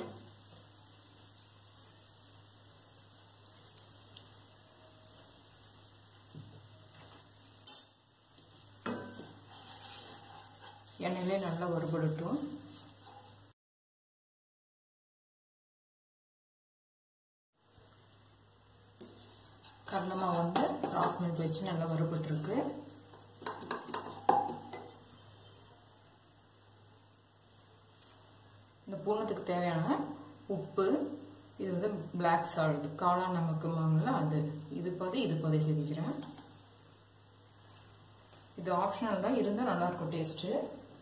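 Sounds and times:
wooden spoon scraping a pan: 8.4s - 13.5s, 19.0s - 25.0s
spatula knocking on frying pan: 23.1s - 25.0s.

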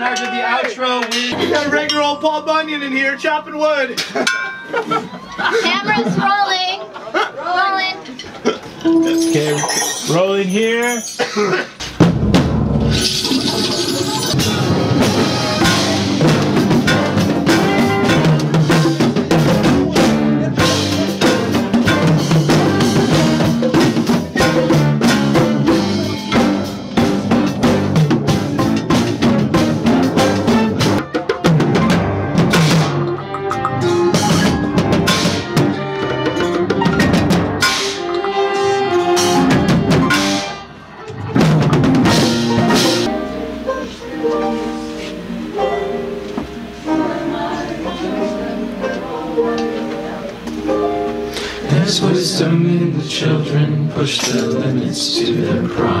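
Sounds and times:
band playing instrumental: 7.8s - 56.0s
quick drum strikes: 11.8s - 13.7s, 14.3s - 38.3s
electric bass: 11.9s - 37.7s.

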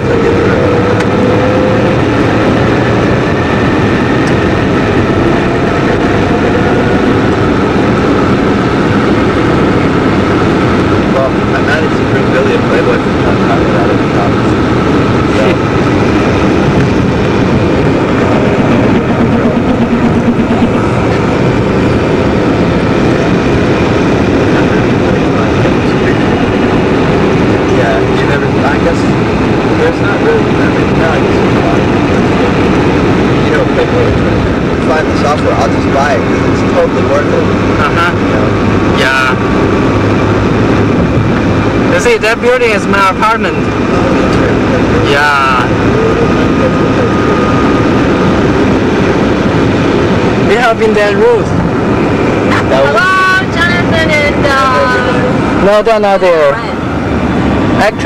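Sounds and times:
indistinct talk: 0.0s - 40.0s, 40.9s - 58.0s
car engine and road noise: 0.0s - 58.0s.

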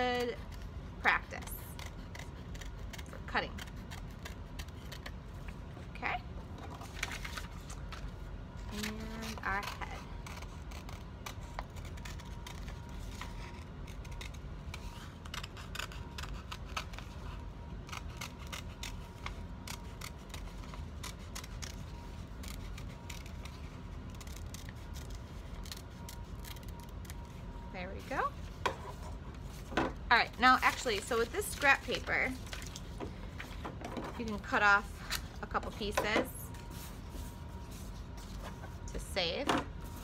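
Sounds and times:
scissors cutting paper: 0.0s - 5.2s, 8.6s - 27.3s.

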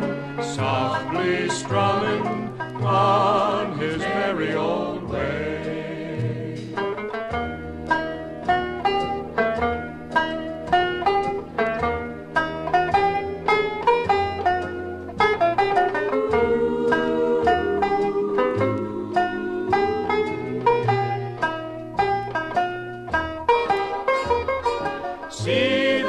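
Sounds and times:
banjo picking melody: 0.0s - 26.0s
held orchestral chords: 15.4s - 22.6s.

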